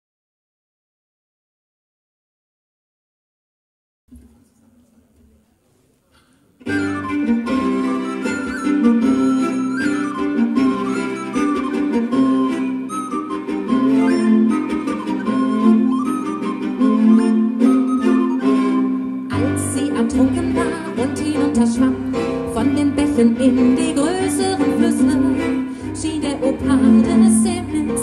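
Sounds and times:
recorder viola and piano trio: 6.6s - 28.0s.

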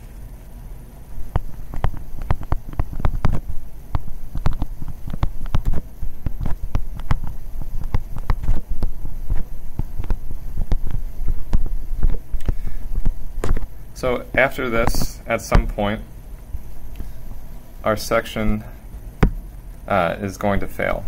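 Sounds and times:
steady low hum: 0.0s - 21.0s
stylus tapping on a tablet: 1.3s - 13.7s, 19.2s - 19.4s.

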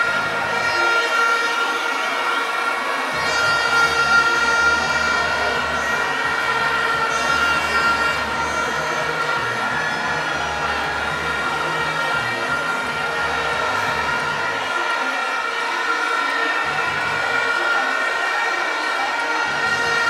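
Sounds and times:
horns blaring: 0.0s - 20.0s.

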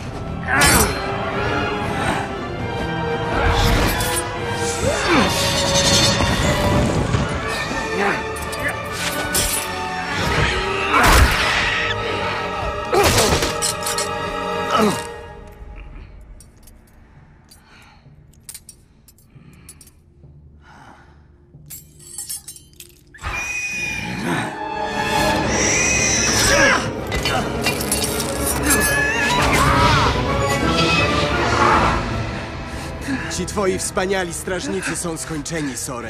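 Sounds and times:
film score: 0.0s - 36.0s
shrill owl cries: 23.2s - 24.2s, 25.5s - 26.9s.

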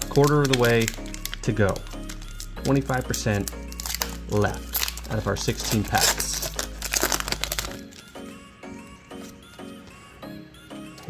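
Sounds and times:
foil wrapper crinkling and tearing: 0.0s - 8.3s
background music with beat: 0.0s - 11.0s.

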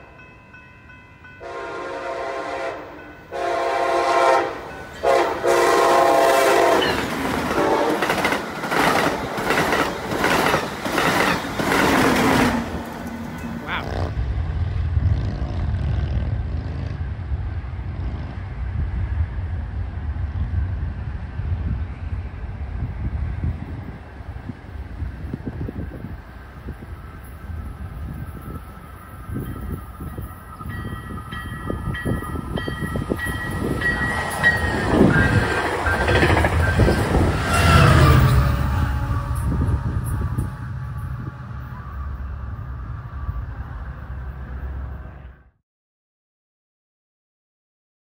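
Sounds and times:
train cars rumbling over rails: 0.0s - 45.5s
train horn blasts: 1.3s - 8.2s, 36.7s - 43.7s.

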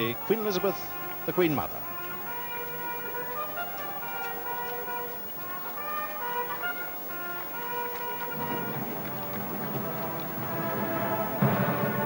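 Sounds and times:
band playing slow music: 2.0s - 12.0s.

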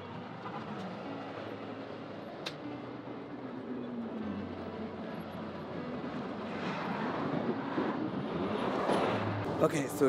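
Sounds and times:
city street traffic hum: 0.0s - 10.0s.

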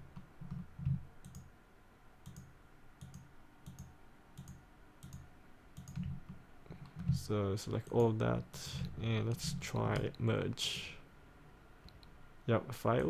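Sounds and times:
computer mouse clicking: 0.4s - 1.5s, 2.2s - 7.2s.

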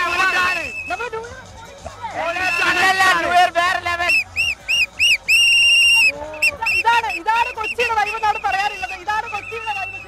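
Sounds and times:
whistle blasts: 0.2s - 1.0s, 4.0s - 10.0s.

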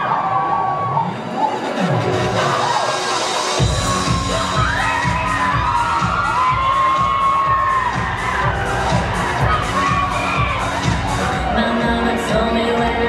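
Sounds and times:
audience cheering and screaming: 0.0s - 13.0s
backing track with drum beat: 1.8s - 11.6s.

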